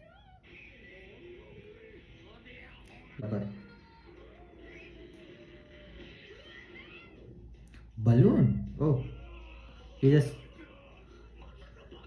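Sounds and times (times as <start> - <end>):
background music: 4.8 - 10.6.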